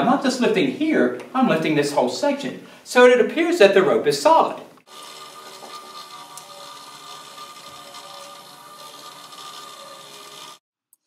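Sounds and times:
small electric motor whirring: 4.8s - 10.6s
rope rubbing and rattling: 4.9s - 10.6s.

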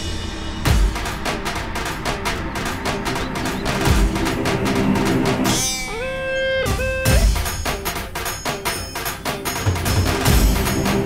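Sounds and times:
percussive background music: 0.0s - 11.0s
plucked string note sliding up: 5.5s - 7.6s.

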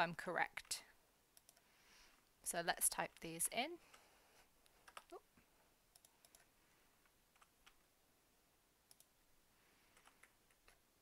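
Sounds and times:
computer keyboard typing clicks: 1.4s - 1.6s, 4.8s - 5.2s, 5.9s - 6.5s, 8.9s - 9.1s, 10.0s - 10.8s.

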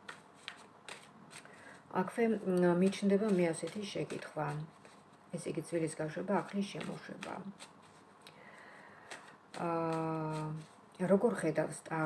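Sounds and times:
cards being shuffled: 0.0s - 8.3s, 9.0s - 10.8s.

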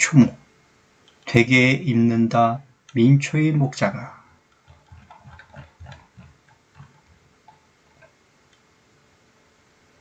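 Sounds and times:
mouse scroll wheel clicking: 1.0s - 1.3s, 4.5s - 8.7s.

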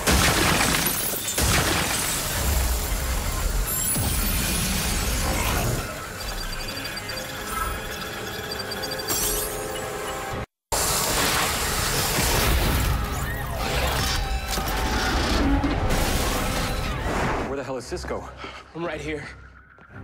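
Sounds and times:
rapid high electronic beeps: 3.7s - 10.3s.

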